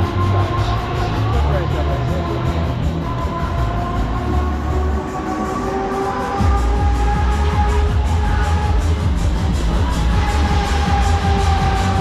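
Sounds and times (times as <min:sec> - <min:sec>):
funfair music: 0:00.0 - 0:12.0
heavy low rumble: 0:00.0 - 0:12.0
ride mechanical whine: 0:00.0 - 0:12.0.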